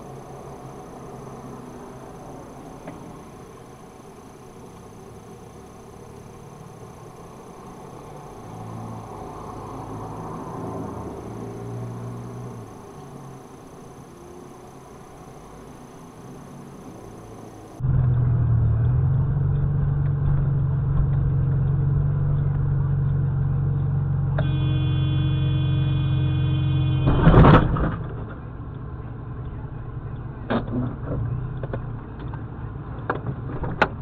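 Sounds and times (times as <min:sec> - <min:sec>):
car engine drone: 0:00.0 - 0:34.0
car horn held: 0:24.4 - 0:27.4
car collision crunch: 0:27.0 - 0:28.0.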